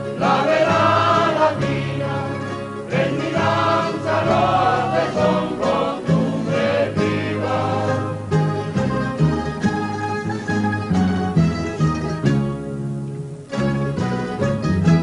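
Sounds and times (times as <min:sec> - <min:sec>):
voices singing in chorus: 0:00.0 - 0:08.4
string accompaniment: 0:00.0 - 0:15.0.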